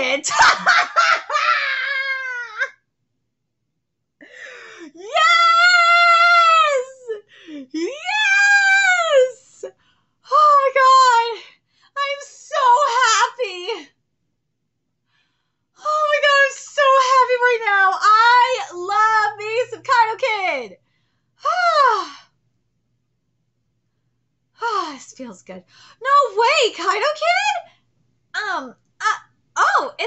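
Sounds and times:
woman squealing: 0.3s - 2.7s.

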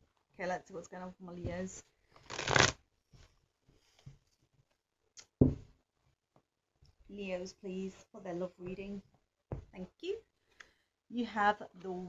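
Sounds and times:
cards being shuffled: 2.2s - 2.8s.

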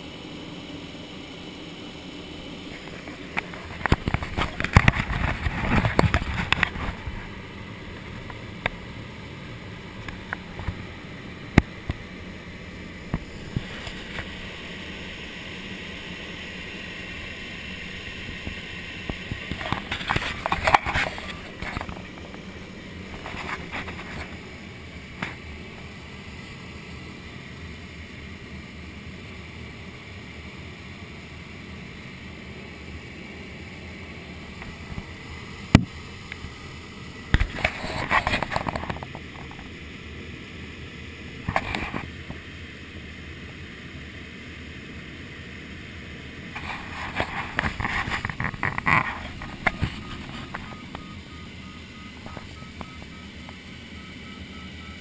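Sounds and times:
crackly noise: 0.0s - 30.6s, 31.4s - 53.9s.

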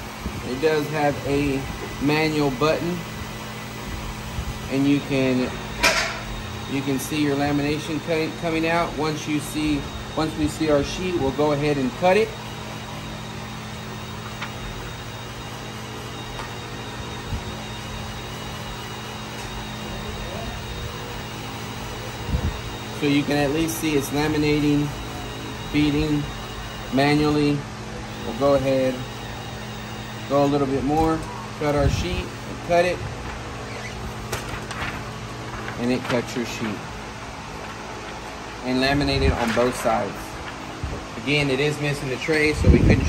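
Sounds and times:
high whine: 0.0s - 43.0s
laminator humming: 0.0s - 43.0s.

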